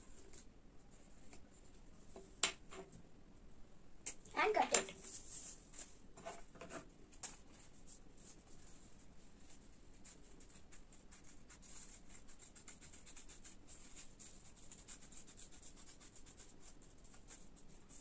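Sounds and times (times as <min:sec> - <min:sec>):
paper rustling: 0:04.4 - 0:08.7.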